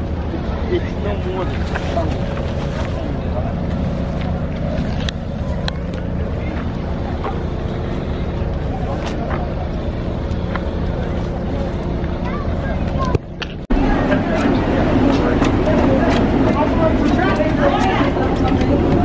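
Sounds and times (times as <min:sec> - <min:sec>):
diesel engine droning: 0:00.0 - 0:19.0.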